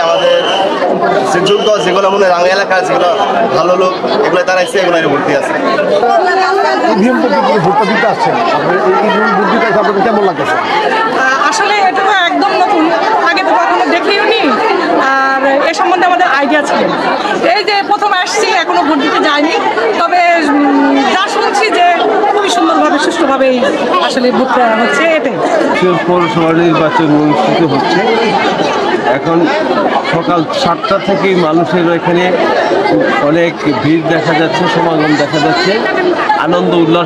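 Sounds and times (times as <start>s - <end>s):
crowd chatter: 0.0s - 37.0s
man speaking into a microphone: 6.9s - 10.6s, 25.6s - 37.0s
woman speaking: 11.2s - 25.4s.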